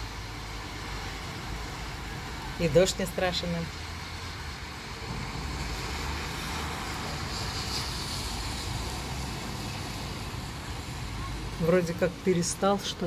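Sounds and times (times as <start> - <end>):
light rain hissing: 0.0 - 13.0
traffic rumble on wet road: 0.0 - 13.0
car tyres hissing past: 4.2 - 11.4.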